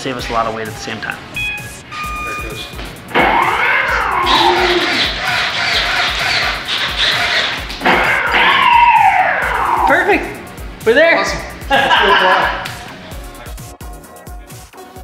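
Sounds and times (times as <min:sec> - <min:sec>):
speed controllers beeping: 0:00.7 - 0:07.8
electric motors and propellers whining: 0:03.1 - 0:09.9.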